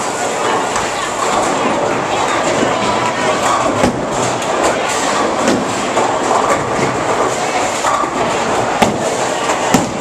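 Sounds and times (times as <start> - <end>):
bowling balls rolling: 0.0 - 10.0
bowling pins clattering: 0.5 - 10.0.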